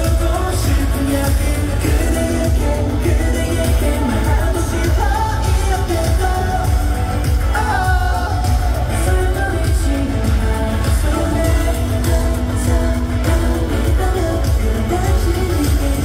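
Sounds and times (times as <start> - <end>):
man singing into microphone: 0.0 - 16.0
pop backing track with bass: 0.0 - 16.0.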